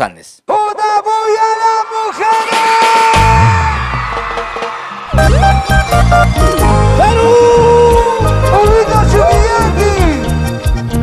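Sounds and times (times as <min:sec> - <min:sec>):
large crowd noise: 0:01.4 - 0:09.4.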